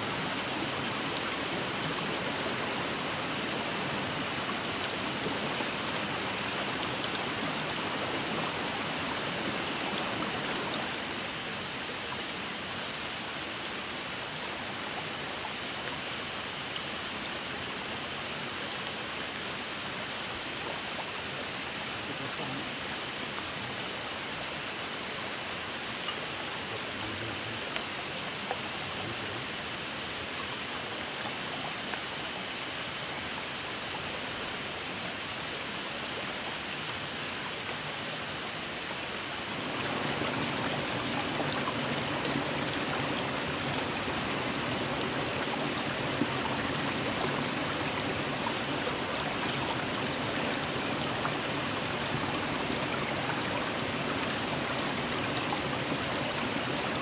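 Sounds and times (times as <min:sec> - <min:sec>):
stream water rushing: 0:00.0 - 0:57.0.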